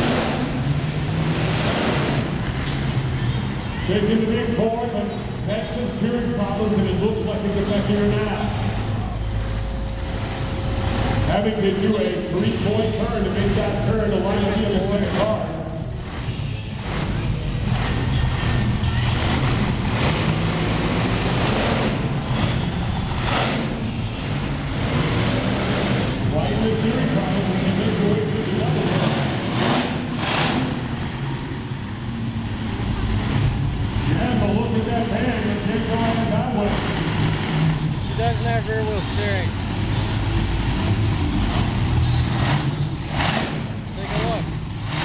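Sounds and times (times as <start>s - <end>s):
crowd noise: 0.0s - 45.0s
truck engine revving: 0.0s - 45.0s
announcer voice over loudspeaker: 3.7s - 8.7s, 11.2s - 16.6s, 26.2s - 29.1s, 34.1s - 37.0s, 38.0s - 39.6s, 43.9s - 44.5s.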